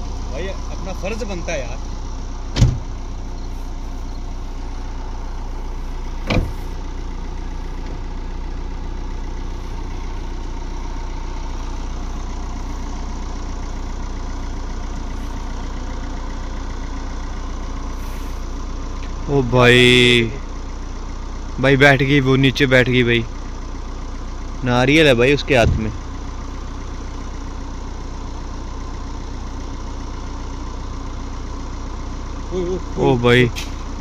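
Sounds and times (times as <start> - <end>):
car engine idling: 0.0 - 34.0.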